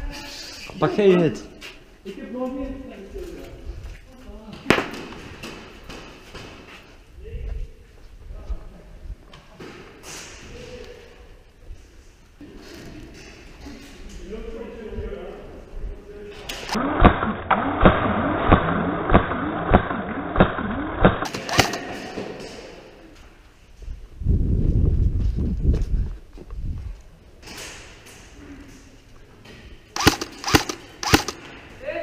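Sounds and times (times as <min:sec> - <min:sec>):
low rumbling noise: 0:16.8 - 0:21.6
airsoft gun firing: 0:16.9 - 0:22.0, 0:30.0 - 0:31.5.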